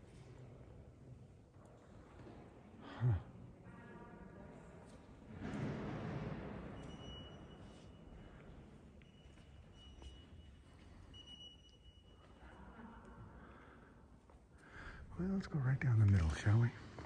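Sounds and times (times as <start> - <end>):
dull noise echoing in church: 0.0 - 17.0.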